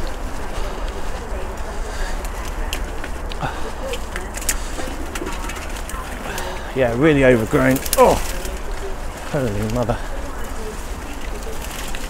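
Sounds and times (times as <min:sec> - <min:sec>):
bicycle rolling over grass: 0:00.0 - 0:12.0
light rattles and ticks: 0:00.0 - 0:12.0.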